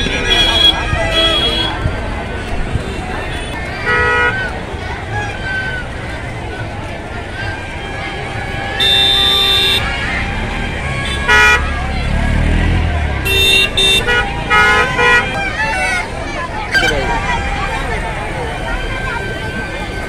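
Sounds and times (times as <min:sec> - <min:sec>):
vehicle horns honking: 0:00.0 - 0:01.9, 0:02.8 - 0:04.5, 0:07.7 - 0:12.0, 0:13.2 - 0:19.8
crowd chatter: 0:00.0 - 0:20.0
vehicle engine passing: 0:09.8 - 0:15.7.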